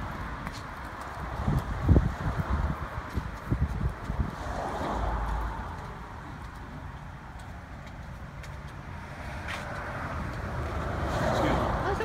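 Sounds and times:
car tyre and engine noise: 0:00.0 - 0:12.0.

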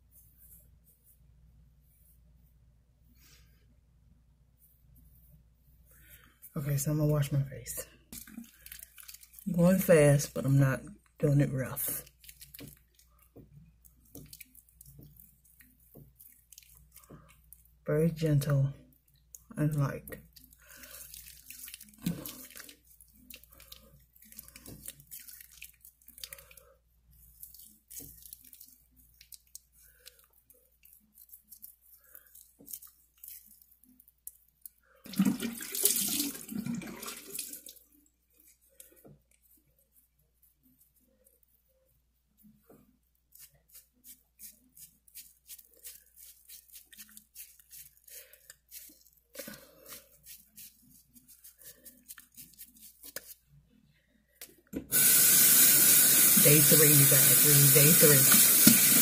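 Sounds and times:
hands rubbing wet skin: 0:00.0 - 0:02.6, 0:08.1 - 0:10.5, 0:11.8 - 0:17.8, 0:20.2 - 0:34.8, 0:42.4 - 0:53.5, 0:54.9 - 0:59.0
tap water running into sink: 0:35.1 - 0:37.8, 0:54.9 - 0:59.0.

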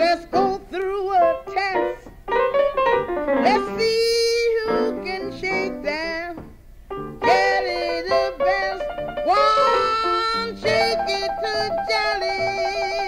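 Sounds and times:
jug band blues: 0:00.0 - 0:13.0
piano: 0:00.0 - 0:13.0.

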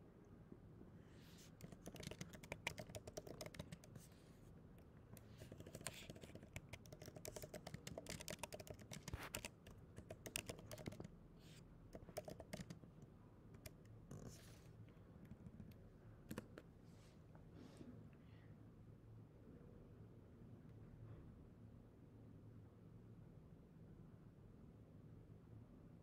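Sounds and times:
typing on computer keyboard: 0:01.4 - 0:04.1, 0:05.2 - 0:11.1, 0:11.9 - 0:13.0, 0:13.6 - 0:14.4.

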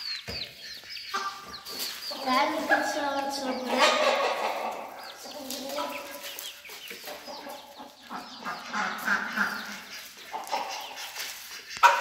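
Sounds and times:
chickens calling: 0:00.0 - 0:12.0.

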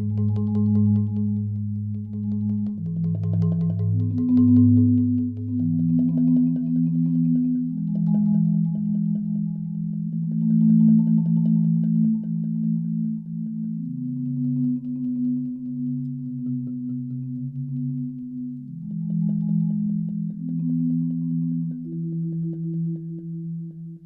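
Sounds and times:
marimba rolled chords: 0:00.0 - 0:24.0.

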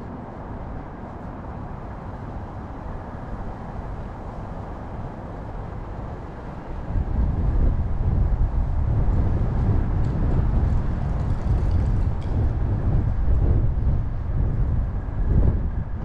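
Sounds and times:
faint city street ambience: 0:00.0 - 0:16.0
wind buffeting microphone: 0:00.0 - 0:16.0.

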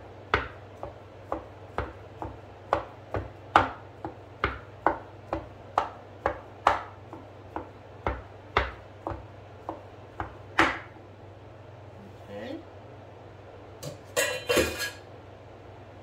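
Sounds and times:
knife chopping on wooden board: 0:00.3 - 0:10.9.

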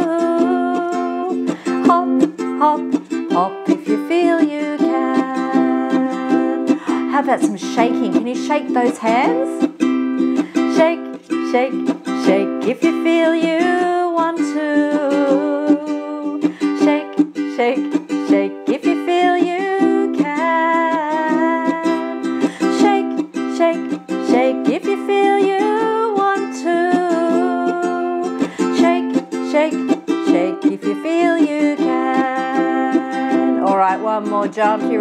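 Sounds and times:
ukulele strumming: 0:00.0 - 0:35.0
woman singing: 0:00.0 - 0:35.0.

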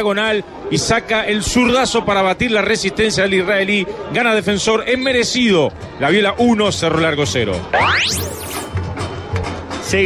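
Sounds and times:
rising pitch sweep: 0:07.8 - 0:08.7.

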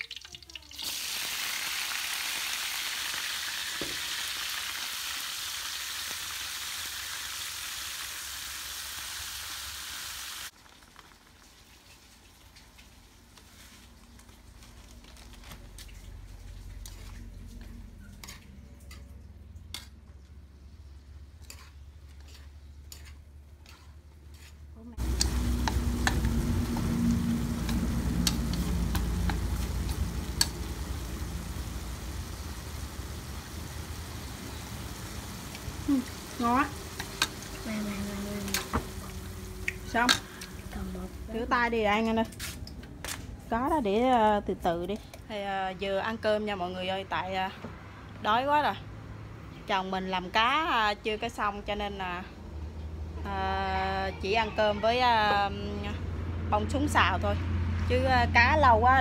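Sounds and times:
food sizzling in hot oil: 0:00.0 - 0:14.6, 0:21.4 - 0:42.5
chopsticks scraping a wok: 0:16.7 - 0:20.0, 0:21.3 - 0:30.6
low hum: 0:24.8 - 0:41.7.

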